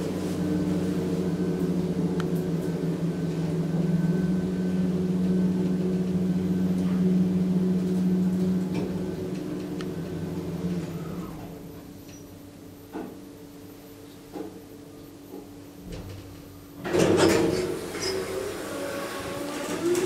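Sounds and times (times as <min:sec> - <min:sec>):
elevator drive hum: 0:00.0 - 0:20.0.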